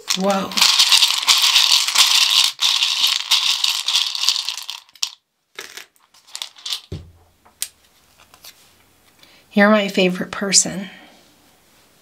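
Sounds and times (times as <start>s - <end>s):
hard candies rattling in a bowl: 0.0s - 6.9s.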